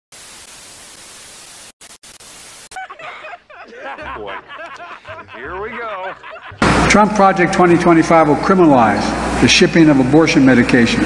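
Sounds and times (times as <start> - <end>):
tv static hiss: 0.1 - 2.9.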